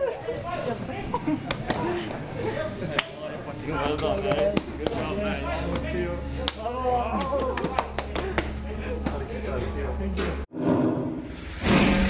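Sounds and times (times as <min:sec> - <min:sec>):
hand slaps: 0:05.7 - 0:08.6.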